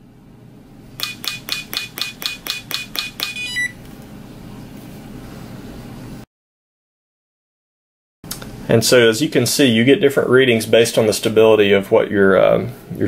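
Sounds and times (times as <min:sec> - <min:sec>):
probe tapping quickly: 0:01.0 - 0:03.4
short beep: 0:03.0 - 0:03.8.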